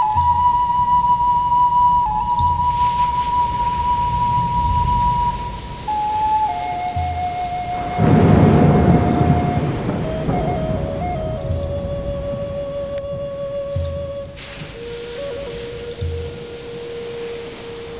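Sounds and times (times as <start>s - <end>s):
flute playing long notes: 0.0s - 17.9s
soft low pulses: 0.0s - 17.9s
rushing swell of noise: 2.0s - 17.9s.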